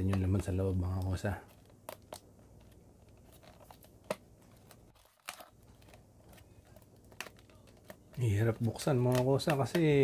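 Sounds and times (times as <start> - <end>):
packing tape crinkling: 0.0 - 10.0.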